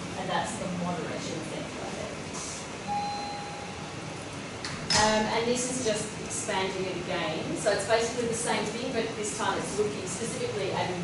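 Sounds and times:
short beep tone: 2.8 - 3.9.

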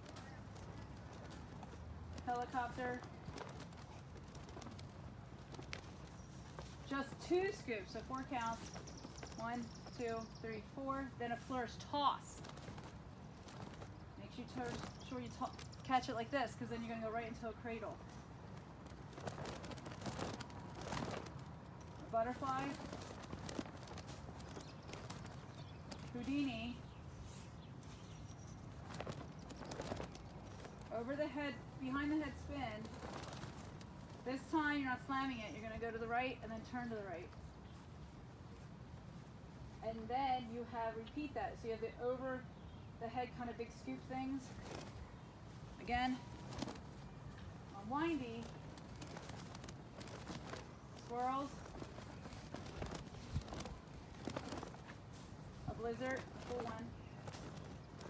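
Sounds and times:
soft knocks and swishes of flags: 0.0 - 40.1, 43.6 - 58.0.

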